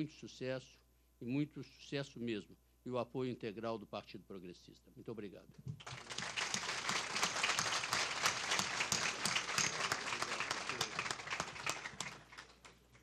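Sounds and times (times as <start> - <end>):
audience applauding: 5.8 - 13.0.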